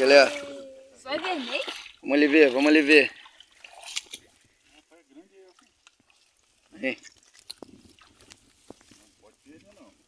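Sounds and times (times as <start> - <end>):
water dripping from a net: 0.1 - 8.9.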